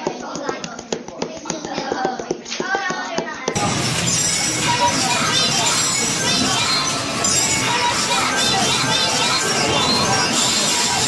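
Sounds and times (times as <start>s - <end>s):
rapid taps on tabletop: 0.0s - 3.6s
music: 3.6s - 11.0s
voices talking: 3.6s - 11.0s.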